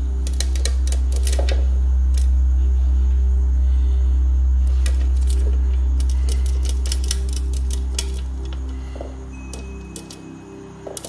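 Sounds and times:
loud low hum: 0:00.0 - 0:10.8.

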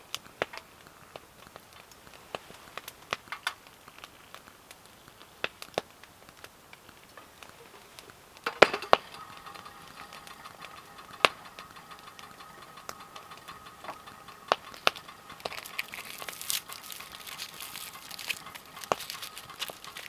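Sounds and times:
fine crackling: 0:00.0 - 0:20.0
metal camp gear clicking: 0:08.4 - 0:20.0
metal kettle clanking on stove: 0:08.5 - 0:17.2.

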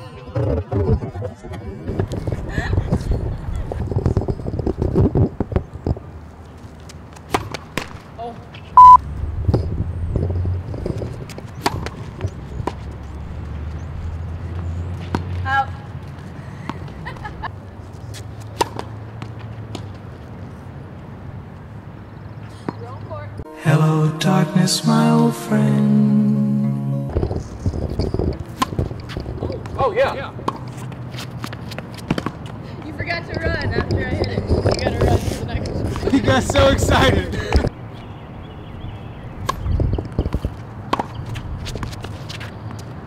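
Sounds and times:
tennis balls struck and bouncing: 0:07.2 - 0:08.0, 0:11.3 - 0:12.9, 0:15.0 - 0:15.4, 0:18.1 - 0:20.0, 0:28.4 - 0:32.6, 0:39.4 - 0:42.0
short loud beep: 0:08.8 - 0:09.0
music: 0:23.5 - 0:27.4.

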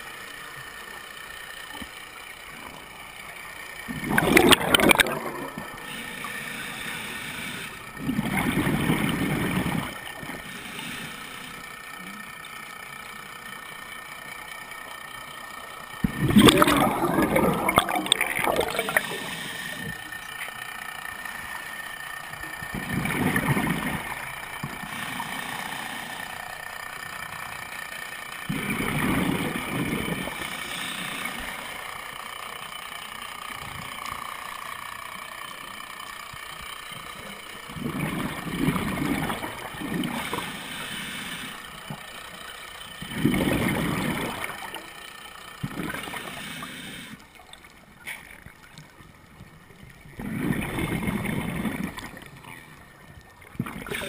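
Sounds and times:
exhaled bubbles from regulator: 0:03.8 - 0:12.9, 0:15.6 - 0:35.0, 0:36.8 - 0:54.0
regulator hiss: 0:05.3 - 0:08.0, 0:10.3 - 0:16.0, 0:18.0 - 0:22.8, 0:23.8 - 0:28.5, 0:30.1 - 0:37.7, 0:40.1 - 0:42.9, 0:45.0 - 0:47.3.

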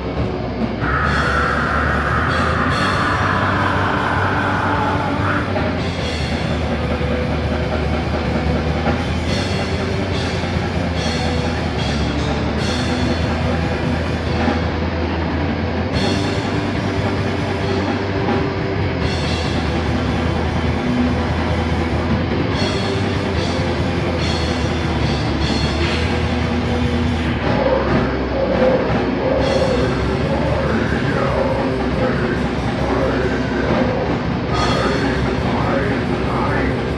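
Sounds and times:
high pitch-bending guitar notes: 0:00.0 - 0:07.3
heavy metal band playing: 0:00.0 - 0:36.9.

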